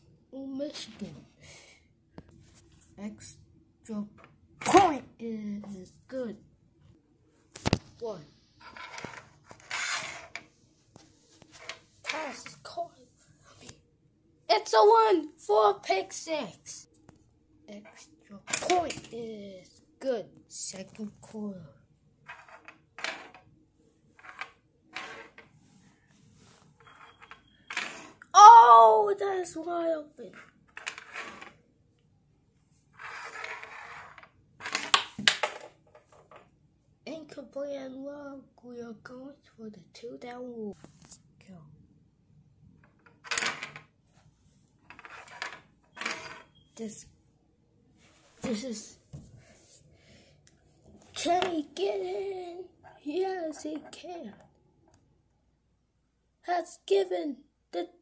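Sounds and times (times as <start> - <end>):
plastic helmet sliding on wood: 8.6 - 10.5, 24.2 - 25.5.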